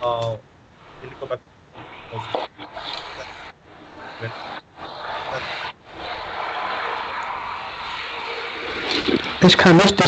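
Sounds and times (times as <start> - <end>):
steady rushing noise: 0.6 - 10.0.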